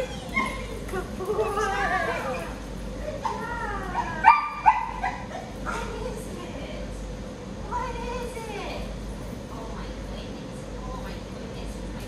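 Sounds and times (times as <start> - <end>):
dog yipping: 0.0 - 0.7, 3.2 - 5.8
dog barking: 4.2 - 5.3.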